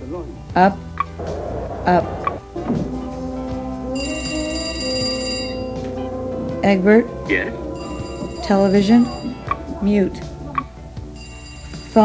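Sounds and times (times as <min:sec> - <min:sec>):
television music: 0:00.0 - 0:12.0
electronic telephone ringing: 0:04.0 - 0:06.1, 0:07.7 - 0:10.0, 0:11.1 - 0:12.0.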